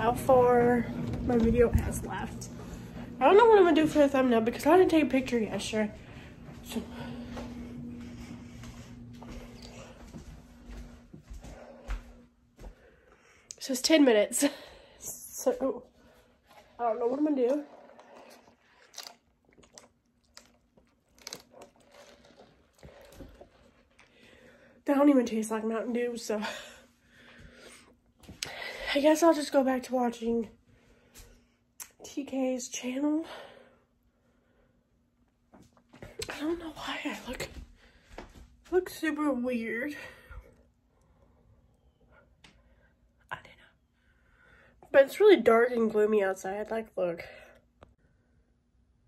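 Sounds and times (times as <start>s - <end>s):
person sipping a drink: 17.6s - 24.2s.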